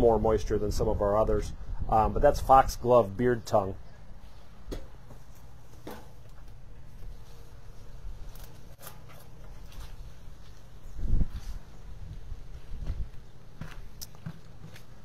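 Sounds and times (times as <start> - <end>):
footsteps: 4.2 - 15.0.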